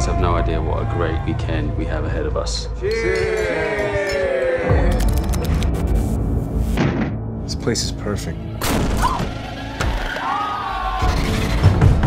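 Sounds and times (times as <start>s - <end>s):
trailer music with low rumble: 0.0s - 12.0s.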